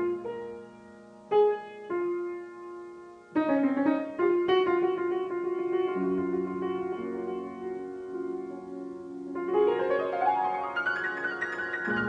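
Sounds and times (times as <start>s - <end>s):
solo grand piano: 0.0s - 12.0s.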